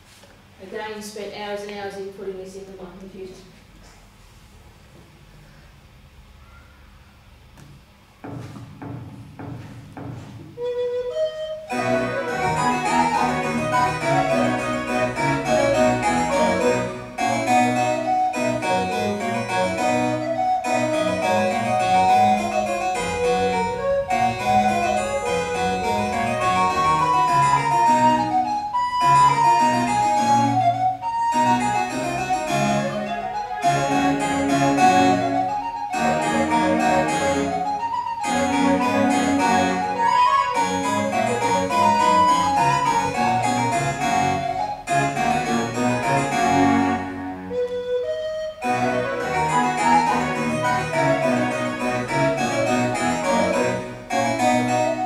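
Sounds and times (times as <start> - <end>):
recorder melody: 10.5 - 55.0.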